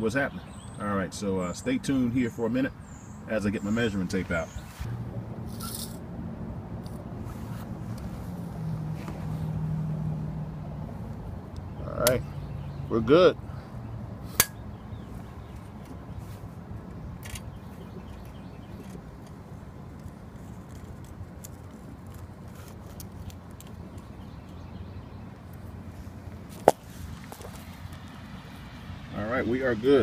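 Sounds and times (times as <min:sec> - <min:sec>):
tape measure metallic clicks: 0:05.5 - 0:06.0.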